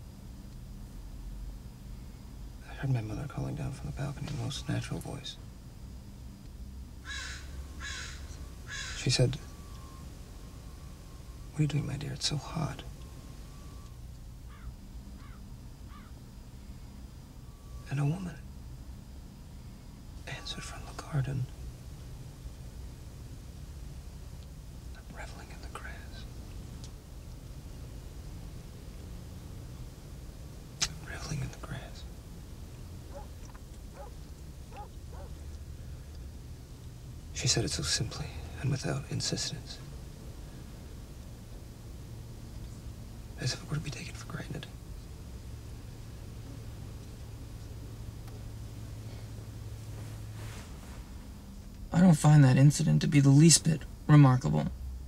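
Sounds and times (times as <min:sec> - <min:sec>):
low steady hum: 0:00.0 - 0:55.0
crow cawing: 0:07.0 - 0:09.1, 0:14.5 - 0:16.2
person whispering: 0:11.6 - 0:12.9, 0:20.3 - 0:21.5, 0:25.0 - 0:26.3, 0:30.8 - 0:32.1, 0:43.4 - 0:44.8.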